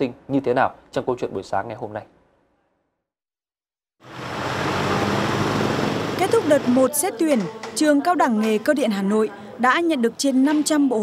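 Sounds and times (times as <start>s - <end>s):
traffic passing: 4.0s - 8.0s.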